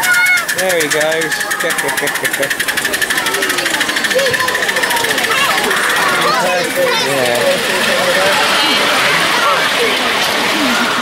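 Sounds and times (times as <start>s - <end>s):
steam locomotive chuffing: 0.0s - 11.0s
voices of onlookers: 0.0s - 11.0s.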